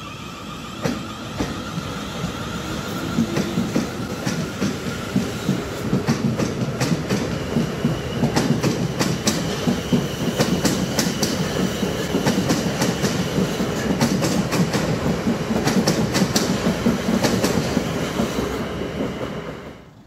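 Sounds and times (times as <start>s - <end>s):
train rolling rumble: 0.0s - 20.0s
train wheels clicking over rail joints: 0.8s - 19.6s.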